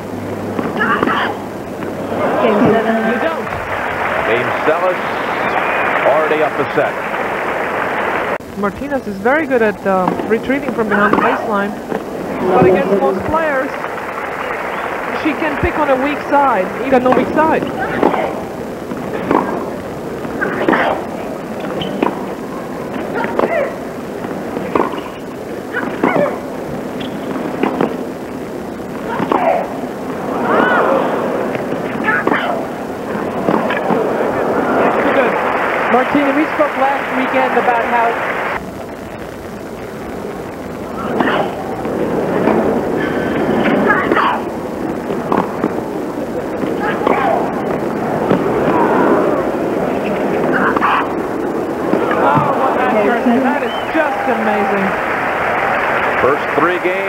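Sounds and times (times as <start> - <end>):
crowd applauding and cheering: 1.9 - 8.4, 11.9 - 16.9, 33.0 - 38.6, 47.3 - 57.0
tennis ball struck by rackets: 17.0 - 18.4, 19.2 - 19.7, 24.6 - 25.2, 45.2 - 45.8.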